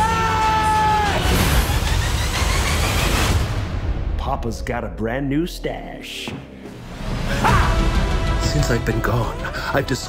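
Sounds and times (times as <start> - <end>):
trailer music: 0.0 - 10.0.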